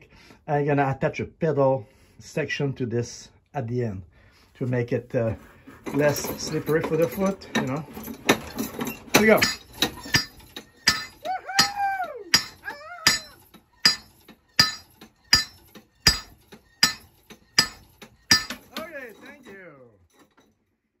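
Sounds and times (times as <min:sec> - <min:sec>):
hammer striking steel anvil: 0:09.1 - 0:19.2.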